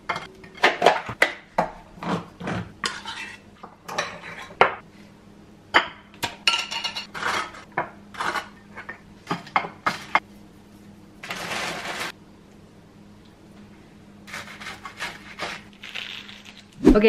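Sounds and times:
plastic bag rustling: 11.2s - 12.1s.

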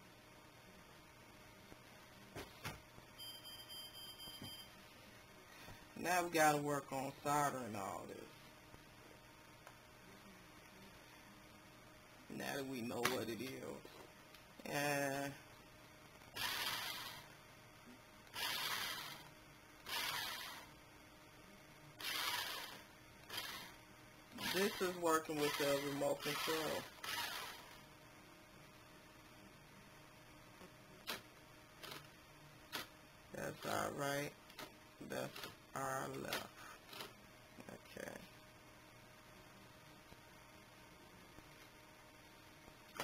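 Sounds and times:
toy car motor whirring: 16.4s - 17.3s, 18.3s - 20.7s, 22.0s - 23.8s, 24.4s - 27.8s.

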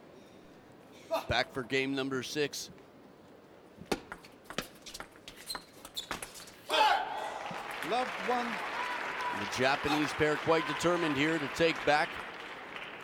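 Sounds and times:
crowd cheering and applause: 7.0s - 13.0s.

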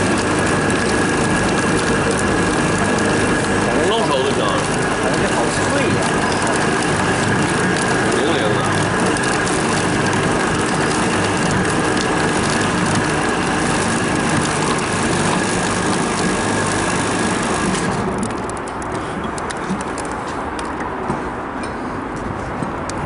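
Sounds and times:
threading machine grinding with whine: 0.0s - 18.8s.

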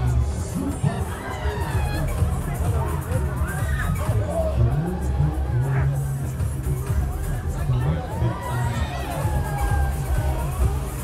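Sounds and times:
fairground music with bass beat: 0.0s - 11.0s.

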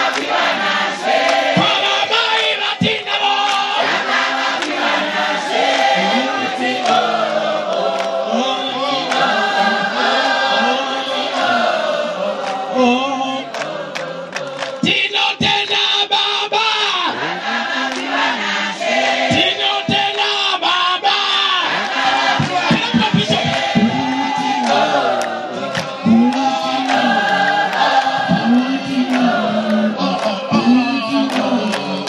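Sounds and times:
women's choir singing: 0.0s - 16.4s, 17.1s - 32.0s.

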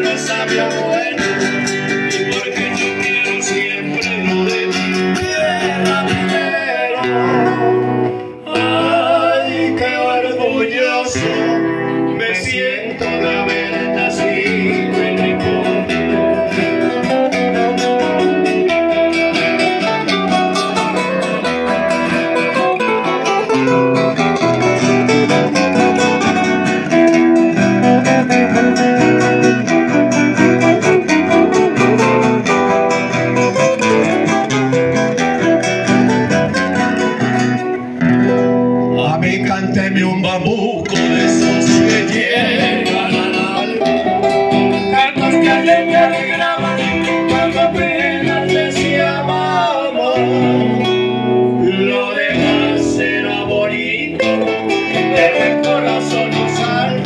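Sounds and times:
acoustic guitar trio playing: 0.0s - 57.0s.

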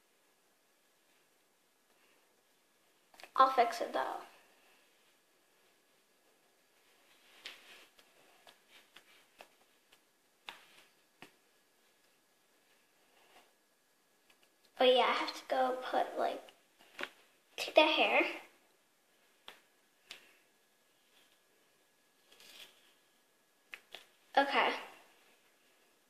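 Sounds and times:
soft rustle: 4.3s - 14.8s, 19.0s - 26.0s.

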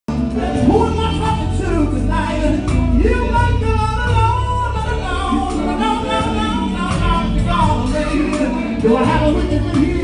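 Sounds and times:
drums: 0.1s - 10.0s
electric bass guitar: 0.1s - 10.0s
person singing: 0.1s - 10.0s.

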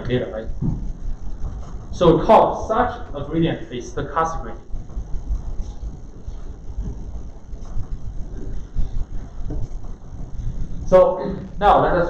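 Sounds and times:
low rumble of room noise: 0.0s - 12.0s
microphone bumps: 0.4s - 2.2s, 4.6s - 11.6s.

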